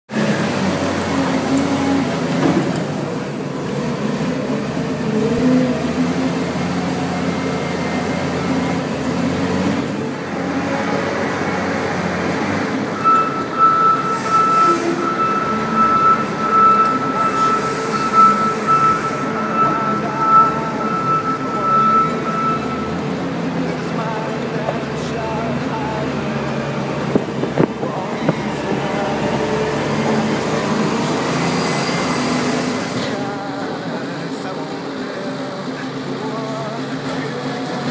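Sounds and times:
diesel engine under load: 0:00.0 - 0:37.9.

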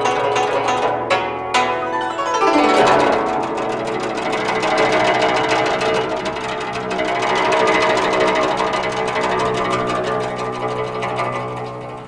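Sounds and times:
guzheng plucked notes: 0:00.0 - 0:12.0.

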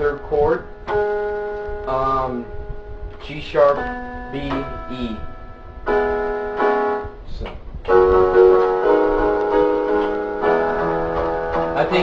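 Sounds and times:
electronic keyboard piano chords: 0:00.0 - 0:12.0.

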